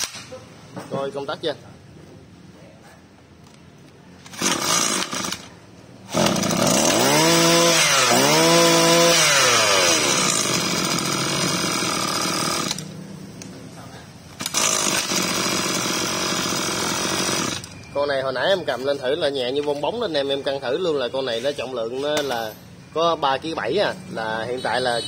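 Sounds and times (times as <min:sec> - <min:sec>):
recoil starter pull: 0:04.2 - 0:05.5, 0:06.1 - 0:13.0, 0:14.3 - 0:17.7
brush-cutter engine revving: 0:04.2 - 0:13.0, 0:14.4 - 0:17.7.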